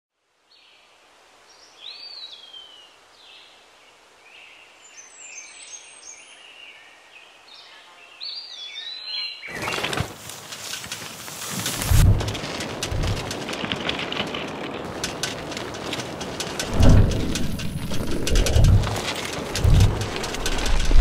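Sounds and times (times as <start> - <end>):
faint outdoor hiss: 0.2 - 9.4
loud rushing noise: 16.6 - 21.0.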